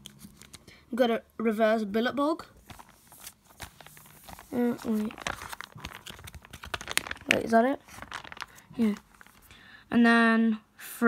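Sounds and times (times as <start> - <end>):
plastic pages crinkling: 2.4 - 9.6.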